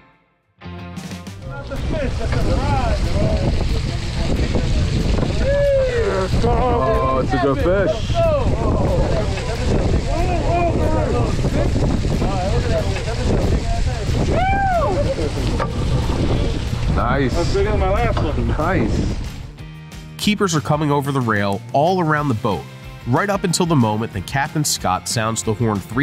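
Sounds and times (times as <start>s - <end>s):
boat noise: 1.4s - 19.6s
wind on microphone: 1.5s - 19.6s
people calling out excitedly: 5.3s - 11.8s, 12.5s - 15.6s.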